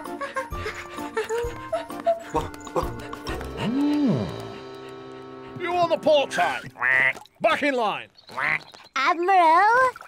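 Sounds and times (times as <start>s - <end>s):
cartoon background music: 0.0s - 7.1s.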